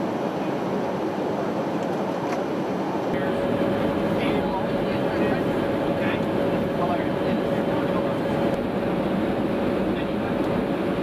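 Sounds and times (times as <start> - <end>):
aircraft cabin engine rush: 0.0 - 11.0
faint steady hum: 3.1 - 11.0
deep rumble: 3.2 - 11.0.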